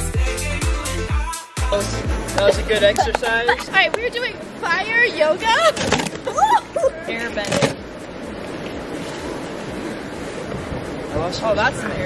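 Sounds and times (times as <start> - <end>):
wind buffeting microphone: 2.2 - 12.0.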